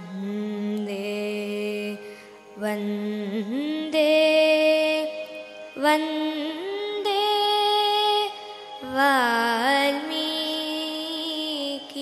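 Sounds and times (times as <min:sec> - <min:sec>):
girl singing into a microphone: 0:00.0 - 0:12.0.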